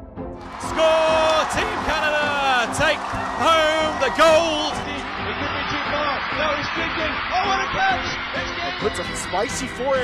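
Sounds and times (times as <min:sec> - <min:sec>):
background music: 0:00.0 - 0:10.0
person shouting excitedly: 0:00.6 - 0:02.8.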